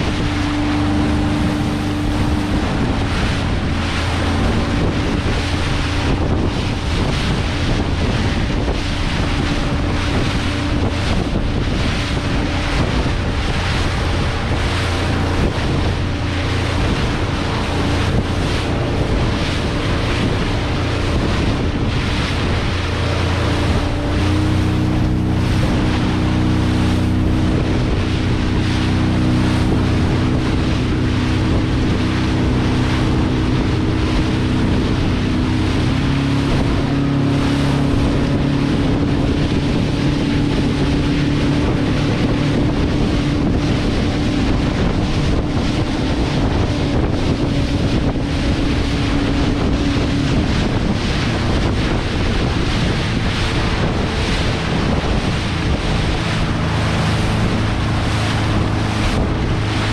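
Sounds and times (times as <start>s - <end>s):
motorboat engine running: 0.0s - 59.9s
water rushing along hull: 0.0s - 59.9s
wind buffeting microphone: 0.0s - 59.9s.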